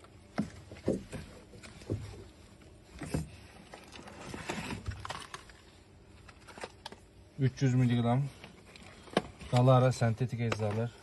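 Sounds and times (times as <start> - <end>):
light knocks and rustling: 0.3 - 5.0.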